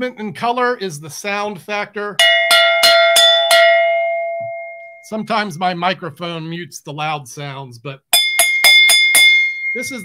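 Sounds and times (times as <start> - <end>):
metal mug struck like a bell: 2.2 - 5.1, 8.2 - 10.0.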